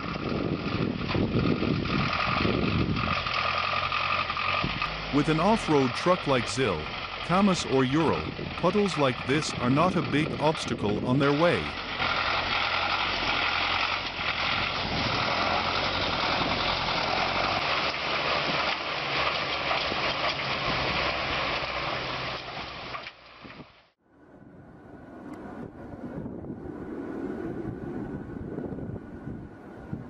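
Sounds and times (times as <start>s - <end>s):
truck engine under load: 0.0s - 23.9s.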